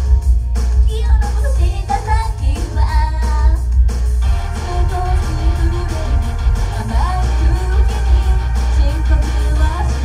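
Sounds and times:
loud amplified music with heavy bass: 0:00.0 - 0:10.0
women singing pop song: 0:00.8 - 0:10.0.

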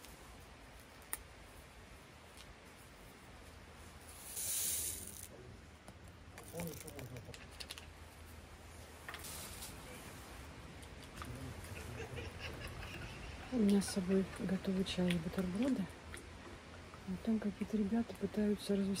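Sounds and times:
sachet crinkling: 0:06.4 - 0:07.8.

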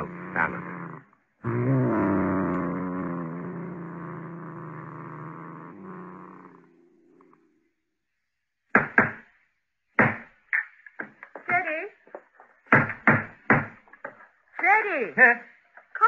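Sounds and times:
low cat growl: 0:00.0 - 0:07.8.

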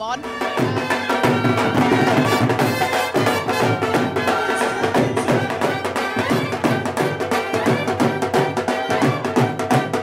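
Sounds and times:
dhol drums beating: 0:00.0 - 0:10.0
saxophone melody: 0:00.2 - 0:10.0.

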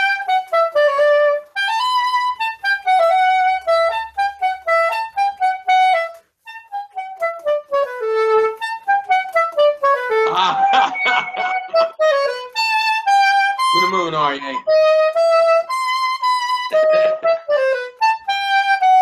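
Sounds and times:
soprano saxophone melody: 0:00.0 - 0:19.0.

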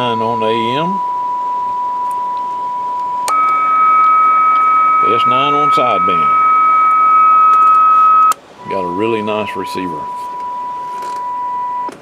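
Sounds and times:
low hum: 0:00.0 - 0:11.9
radio test tone: 0:00.0 - 0:11.9.

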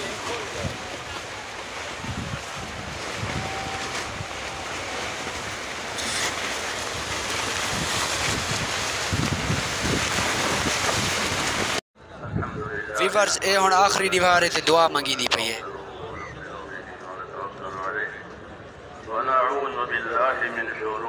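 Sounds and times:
wind on microphone: 0:01.8 - 0:06.3, 0:06.9 - 0:13.0.

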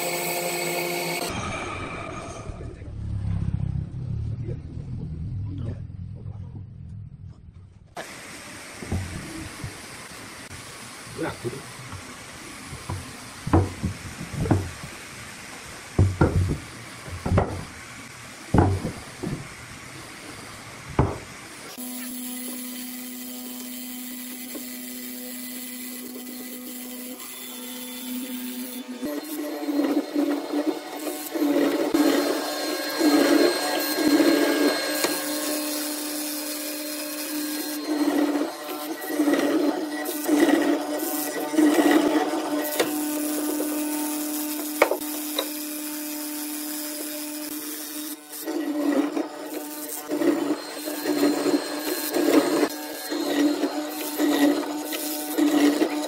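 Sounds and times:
electric motor humming: 0:21.0 - 0:56.0.

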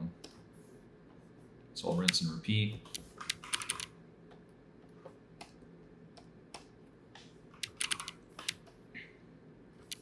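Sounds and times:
faint steady hum: 0:00.0 - 0:10.0
computer keyboard clicks: 0:02.9 - 0:03.9, 0:07.6 - 0:08.8.

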